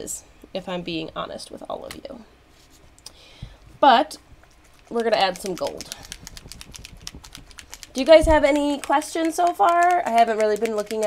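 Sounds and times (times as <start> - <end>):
faint rapid irregular clicking: 4.7 - 11.0.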